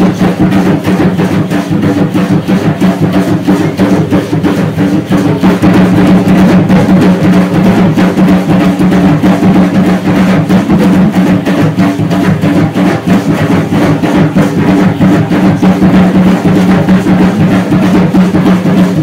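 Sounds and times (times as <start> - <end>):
rattling percussion: 0.0 - 19.0
steady dense drumbeat: 0.0 - 19.0.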